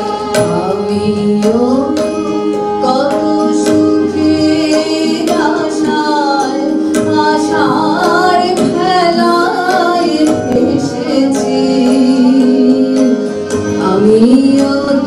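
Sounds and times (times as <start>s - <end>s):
harmonium drone: 0.0s - 15.0s
keyboard: 0.0s - 15.0s
tabla strokes: 0.0s - 15.0s
women singing: 0.0s - 15.0s.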